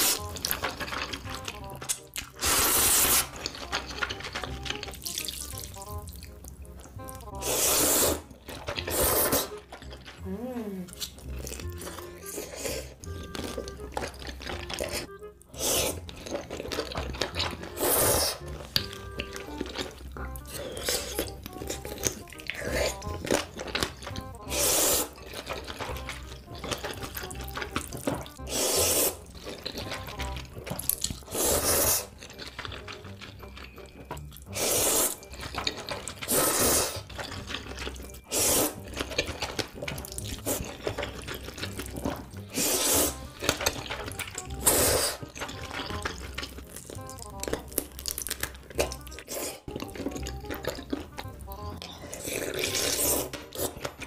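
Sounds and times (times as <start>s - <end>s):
person slurping noodles: 2.4s - 3.6s, 7.3s - 9.6s, 10.8s - 13.0s, 14.8s - 17.0s, 17.7s - 18.7s, 22.4s - 23.0s, 24.4s - 25.6s, 28.3s - 29.7s, 31.1s - 32.2s, 34.4s - 43.7s, 44.4s - 45.4s, 48.8s - 49.7s, 52.0s - 53.8s.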